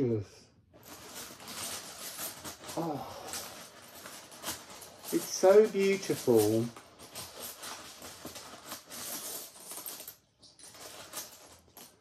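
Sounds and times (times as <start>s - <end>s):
small objects clicking and rustling: 0.8s - 12.0s.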